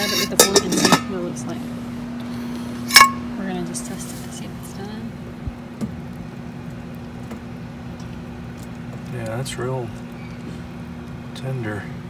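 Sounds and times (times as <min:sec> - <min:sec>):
metal fork knocking enamel pot: 0:00.0 - 0:01.1
steady low hum: 0:00.0 - 0:12.0.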